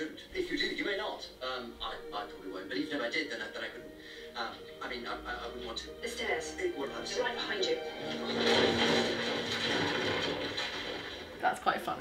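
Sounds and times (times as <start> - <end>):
person tumbling down stairs: 8.1 - 11.4.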